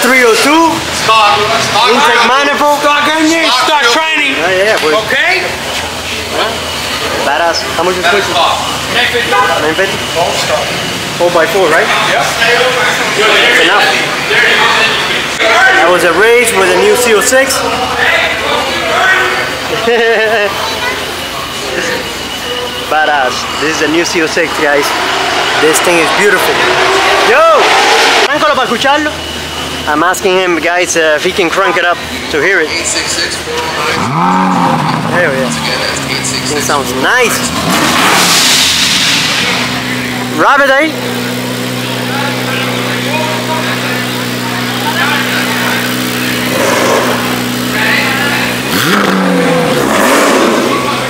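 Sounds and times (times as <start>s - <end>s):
people talking: 0.0s - 51.0s
man speaking: 29.8s - 37.7s.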